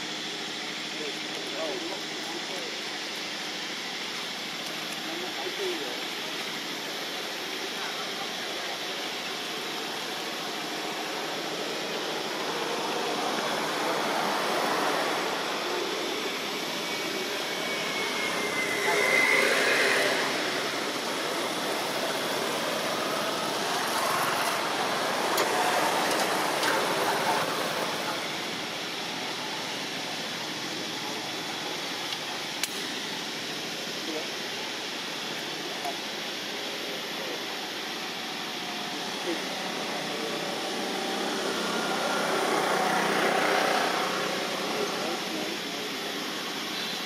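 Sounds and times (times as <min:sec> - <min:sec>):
outdoor background hiss: 0:00.0 - 0:47.0
indistinct voices: 0:04.9 - 0:46.4
high gliding call: 0:12.3 - 0:30.1.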